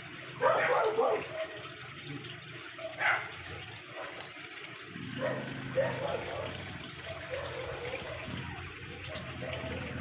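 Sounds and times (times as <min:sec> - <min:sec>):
running water: 0:00.0 - 0:10.0.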